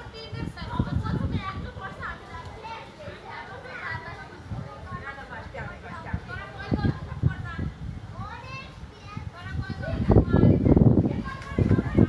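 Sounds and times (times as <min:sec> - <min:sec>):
wind rumble on microphone: 0:00.0 - 0:02.6, 0:03.8 - 0:12.0
distant children calling and shouting: 0:00.0 - 0:12.0.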